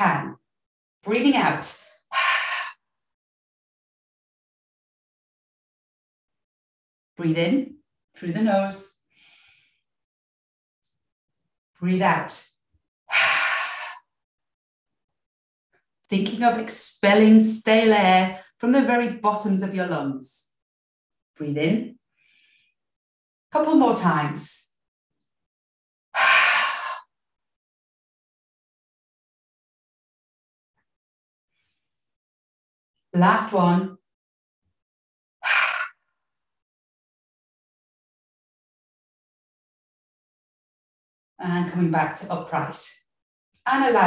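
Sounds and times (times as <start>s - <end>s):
woman exhaling forcefully: 13.1s - 14.0s, 26.2s - 27.1s.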